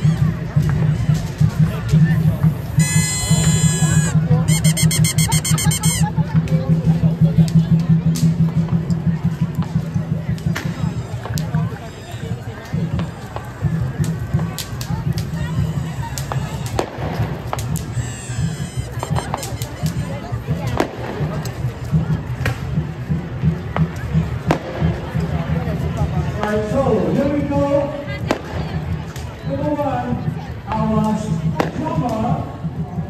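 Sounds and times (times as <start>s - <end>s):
voices rising: 0.0s - 6.4s, 14.9s - 20.5s
firecracker pops: 0.0s - 26.7s, 28.1s - 29.5s, 30.7s - 33.0s
crowd hubbub: 0.0s - 33.0s.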